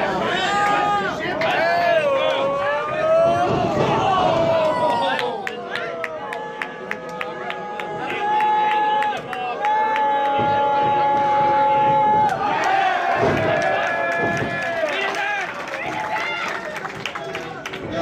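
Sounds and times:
crowd shouting and cheering: 0:00.0 - 0:18.0.

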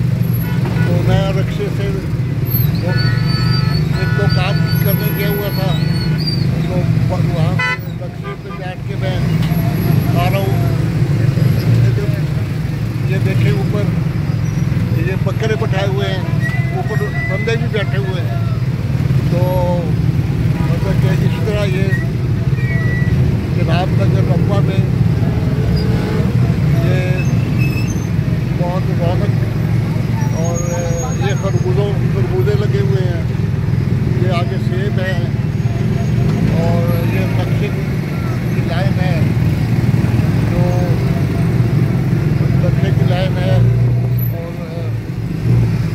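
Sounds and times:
street traffic: 0:00.0 - 0:45.9
people's voices: 0:02.8 - 0:14.1, 0:14.9 - 0:27.4, 0:28.5 - 0:33.4, 0:34.0 - 0:39.6, 0:40.4 - 0:41.8, 0:42.4 - 0:45.1.

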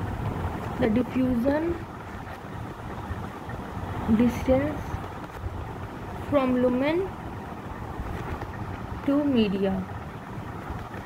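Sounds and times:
low background rumble and hiss: 0:00.0 - 0:11.0.

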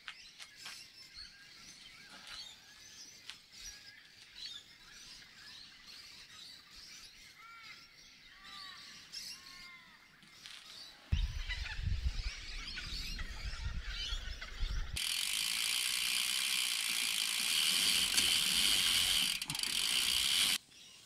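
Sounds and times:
wind rumbling on microphone: 0:11.1 - 0:15.0
bike freehub ratchet buzz: 0:15.0 - 0:20.6.

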